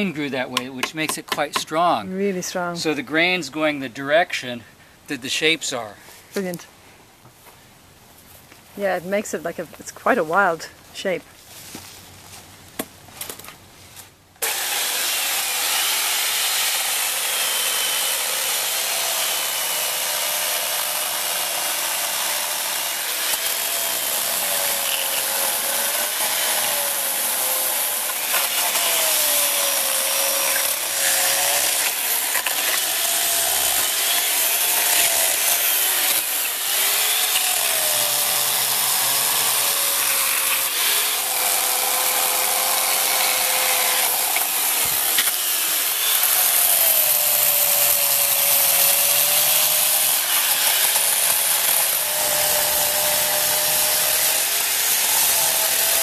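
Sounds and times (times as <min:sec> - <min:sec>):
electric chainsaw cutting wood: 0:14.4 - 0:56.0.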